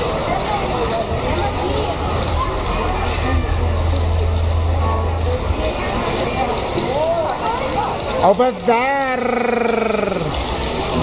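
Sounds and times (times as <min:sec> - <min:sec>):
crowd chatter: 0:00.0 - 0:11.0
steady low hum: 0:02.6 - 0:06.4.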